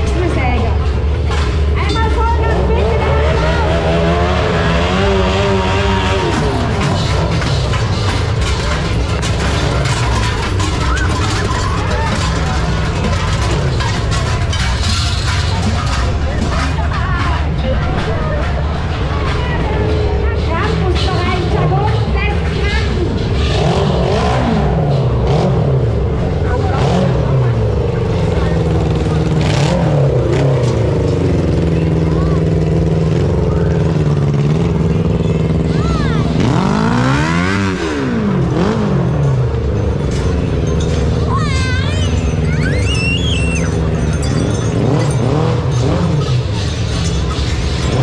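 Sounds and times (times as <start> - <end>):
engine revving: 0.0 - 48.0
people's voices: 0.0 - 48.0.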